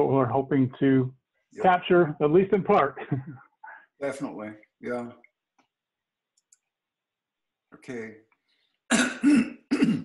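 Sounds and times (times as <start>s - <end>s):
man clearing his throat: 8.9s - 10.0s.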